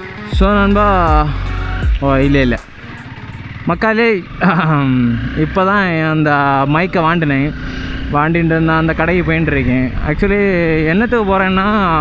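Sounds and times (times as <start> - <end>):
motorcycle riding rumble: 0.0 - 12.0
man talking: 0.3 - 2.7, 3.7 - 7.5, 8.2 - 12.0.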